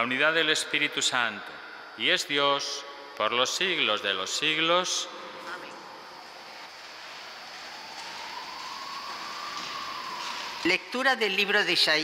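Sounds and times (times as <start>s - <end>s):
church room noise hiss: 0.0s - 12.0s.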